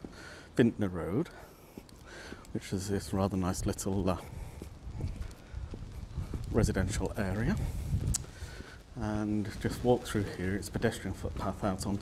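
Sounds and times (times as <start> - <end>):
footsteps on paving: 0.0 - 12.0.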